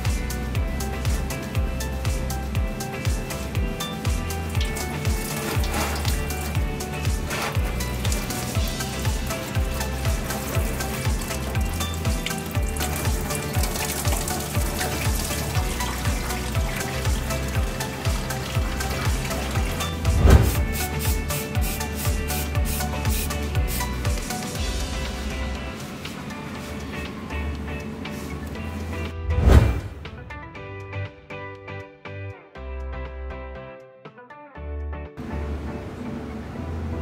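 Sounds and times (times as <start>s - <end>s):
background music with steady beat: 0.0s - 37.0s
coolant splashing from hose: 3.2s - 25.3s.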